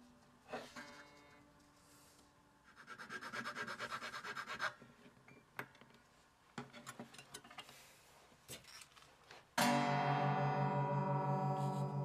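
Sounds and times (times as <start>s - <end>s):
hand file scraping: 2.7s - 4.8s.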